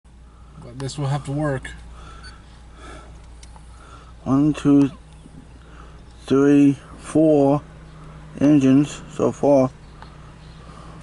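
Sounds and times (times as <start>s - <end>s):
distant locomotive rumble: 0.1s - 11.0s.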